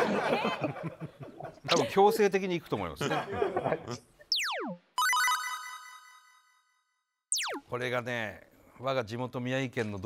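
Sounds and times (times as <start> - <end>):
bright electronic chime: 4.4 - 7.6.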